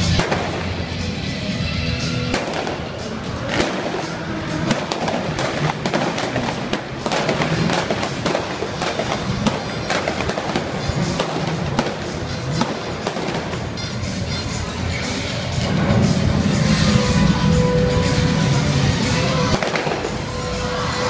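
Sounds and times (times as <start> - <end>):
pyrotechnic pops and bangs: 0.0 - 0.8, 2.3 - 13.7, 19.5 - 20.2
music over loudspeakers: 0.0 - 21.0.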